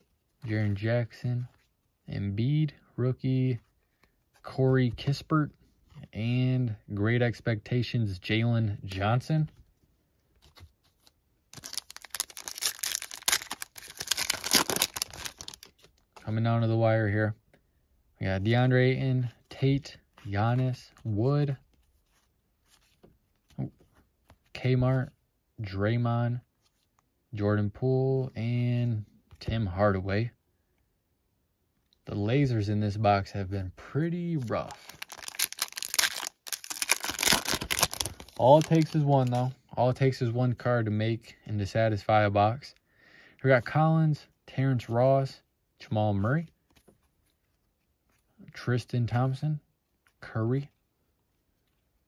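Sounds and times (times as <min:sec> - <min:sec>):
card pack wrapper tearing and crinkling: 0:11.5 - 0:16.0, 0:34.4 - 0:39.4.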